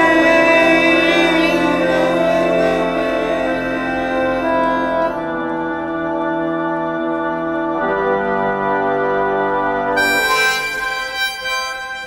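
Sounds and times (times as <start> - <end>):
high reed melody: 0.0 - 6.3, 9.9 - 12.0
pump organ chords: 0.0 - 12.0.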